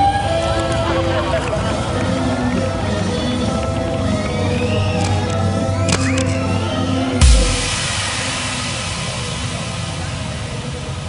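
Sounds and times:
deep booming hit: 0:07.2 - 0:11.0
stage backing music: 0:07.2 - 0:11.0.

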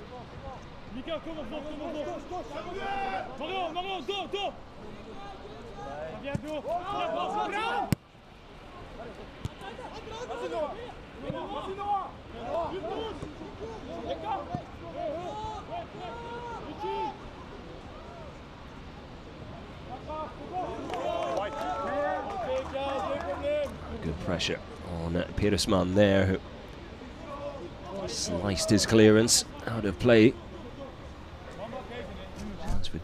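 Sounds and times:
people shouting and chattering: 0:00.0 - 0:33.0.

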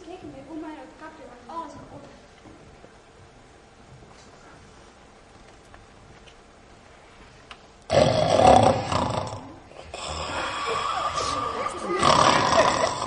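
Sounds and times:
loud snoring: 0:07.9 - 0:13.0.

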